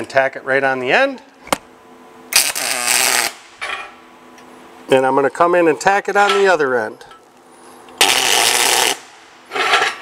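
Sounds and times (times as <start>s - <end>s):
welding arc crackling: 2.3s - 3.5s, 8.0s - 9.4s.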